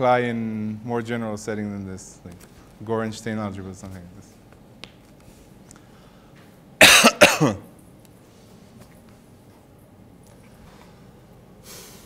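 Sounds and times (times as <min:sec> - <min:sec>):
person coughing: 0:06.8 - 0:07.7.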